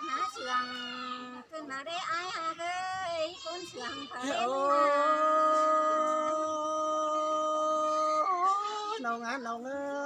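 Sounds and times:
person singing unaccompanied: 0.0s - 10.0s.

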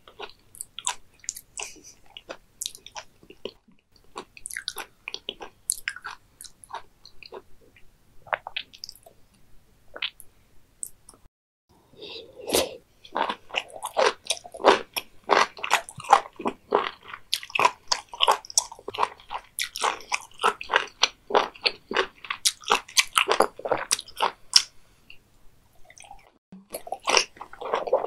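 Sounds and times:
crunchy chewing: 13.1s - 24.7s.

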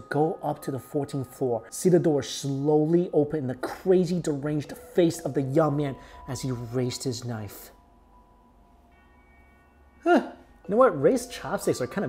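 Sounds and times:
faint background music notes: 0.0s - 12.0s.

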